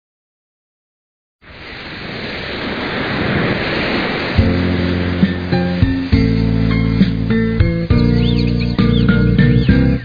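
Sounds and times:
ocean surf washing: 0:01.4 - 0:09.3
music with low chords: 0:04.4 - 0:10.0.

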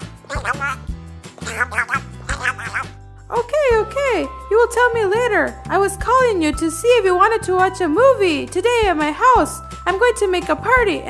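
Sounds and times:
person doing duck voice: 0:00.0 - 0:03.0
light background music: 0:00.0 - 0:11.0.

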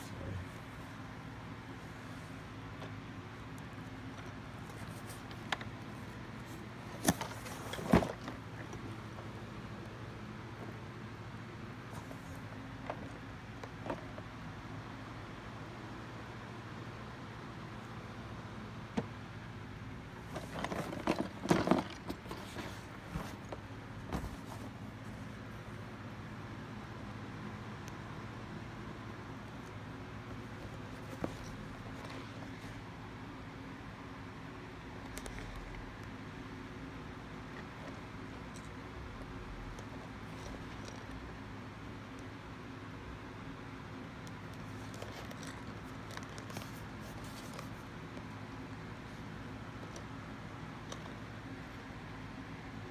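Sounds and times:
steady low hum: 0:00.0 - 0:52.9
cardboard boxes rustling and knocking: 0:04.1 - 0:09.3, 0:20.2 - 0:25.1, 0:30.3 - 0:32.7.

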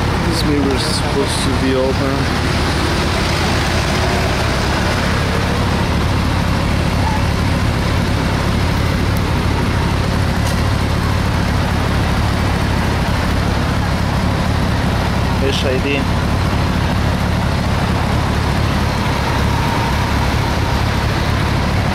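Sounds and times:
motorcycle engine idling: 0:00.0 - 0:21.9.

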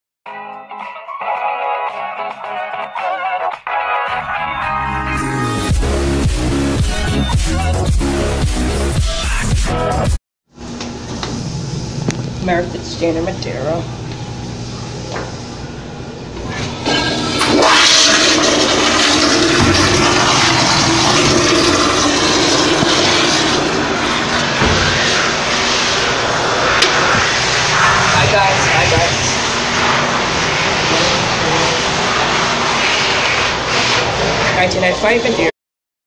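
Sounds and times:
toilet flushing: 0:16.4 - 0:34.3.

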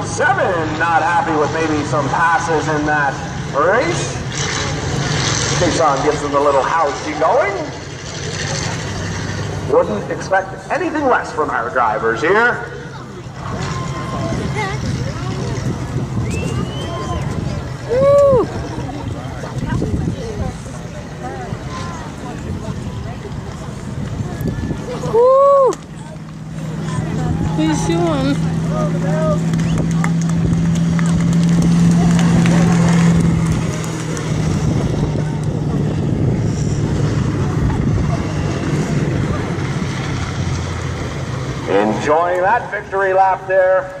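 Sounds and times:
race car engine passing: 0:00.0 - 0:44.0
spectators talking: 0:00.0 - 0:44.0
loud shout: 0:17.9 - 0:18.5, 0:25.0 - 0:25.8.

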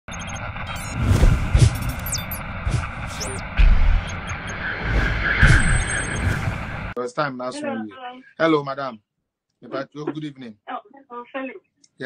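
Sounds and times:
high electronic beeps: 0:00.1 - 0:07.0
rush of noise: 0:00.1 - 0:07.0
deep booms: 0:01.2 - 0:04.3.

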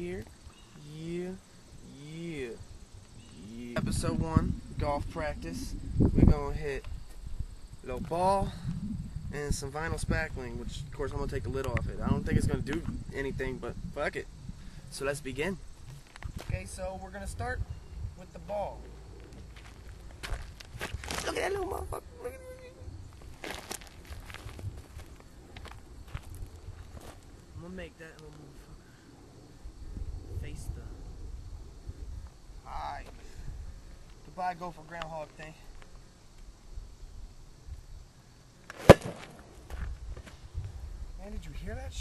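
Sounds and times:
footsteps crunching on gravel: 0:15.8 - 0:16.6, 0:18.8 - 0:21.6, 0:23.2 - 0:27.3.

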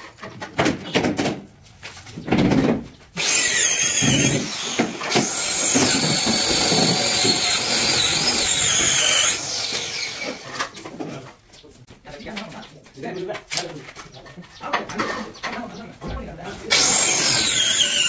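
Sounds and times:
power drill running: 0:03.2 - 0:10.5, 0:16.7 - 0:18.0.

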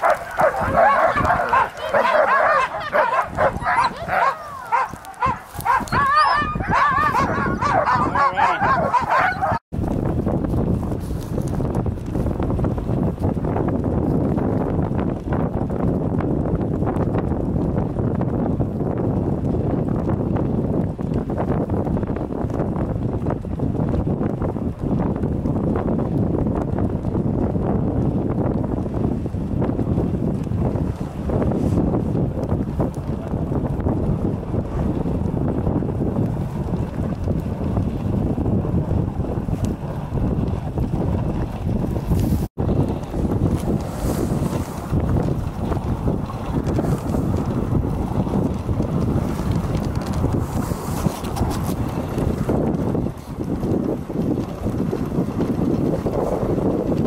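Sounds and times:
sled dogs yelping and barking: 0:00.0 - 0:09.6
dog sled running over snow: 0:00.0 - 0:57.0
wind on microphone: 0:00.0 - 0:57.0.

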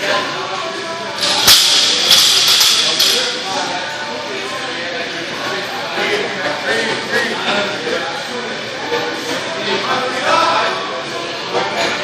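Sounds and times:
barbell crashing onto floor: 0:01.2 - 0:03.4.

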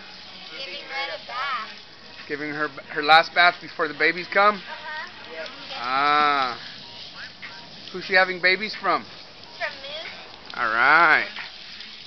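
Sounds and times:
water spraying from hose: 0:00.0 - 0:12.0.

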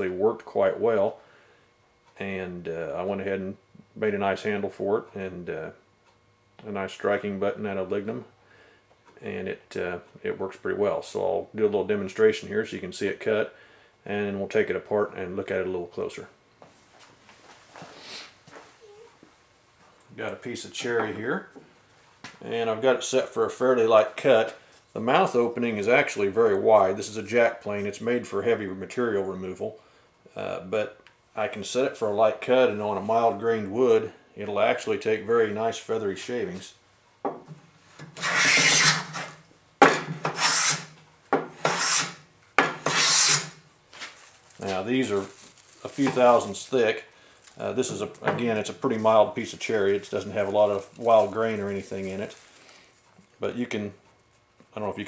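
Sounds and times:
short hiss: 0:17.9 - 0:18.4
hand plane strokes on wood: 0:38.2 - 0:39.3, 0:40.2 - 0:40.9, 0:41.6 - 0:42.2, 0:42.8 - 0:43.5.

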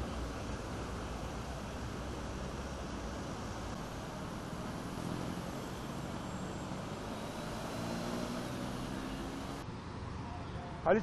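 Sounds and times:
passing engine hum: 0:00.0 - 0:10.4
traffic hiss on busy road: 0:00.0 - 0:11.0.

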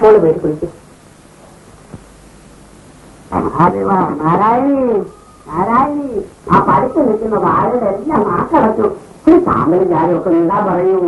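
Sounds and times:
woman talking: 0:00.0 - 0:00.8.

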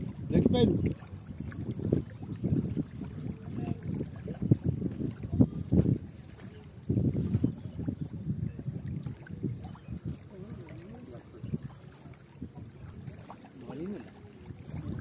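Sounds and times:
small waves lapping: 0:00.0 - 0:15.0
wind buffeting microphone: 0:00.0 - 0:15.0.

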